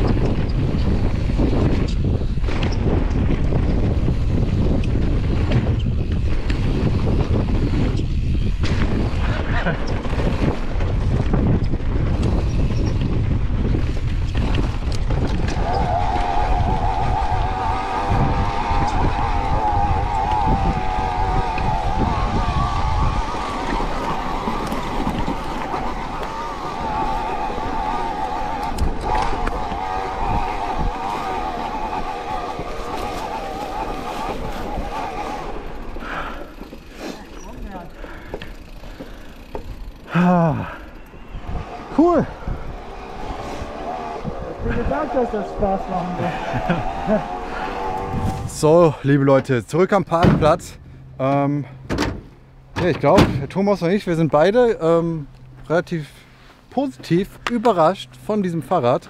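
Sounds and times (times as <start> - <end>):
bike tyre and chassis rattle: 0.0 - 50.8
wind buffeting microphone: 0.0 - 50.9.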